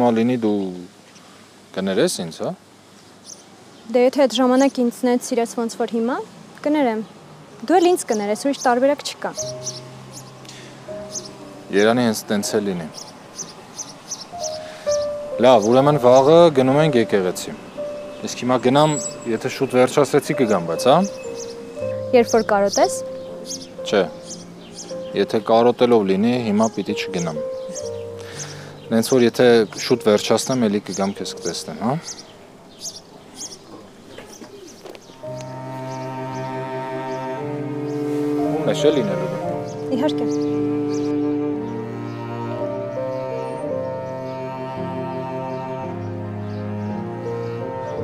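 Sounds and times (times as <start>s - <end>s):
birds chirping: 0.0s - 48.0s
held notes stepping down: 14.3s - 32.2s, 35.2s - 48.0s.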